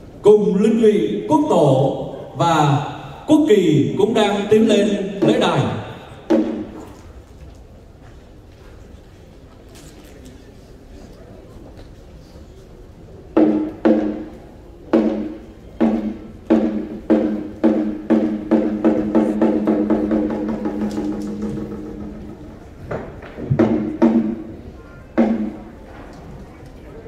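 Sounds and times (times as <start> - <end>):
ringing percussion strikes accelerating: 15.1 - 22.8.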